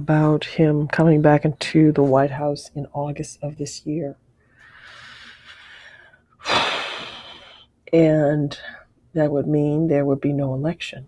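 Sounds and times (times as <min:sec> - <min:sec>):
sharp intake of breath: 0:04.6 - 0:07.6.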